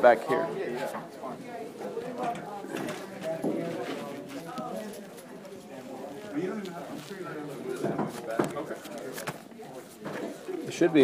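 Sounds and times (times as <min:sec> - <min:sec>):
murmur of people talking: 0:00.0 - 0:11.0.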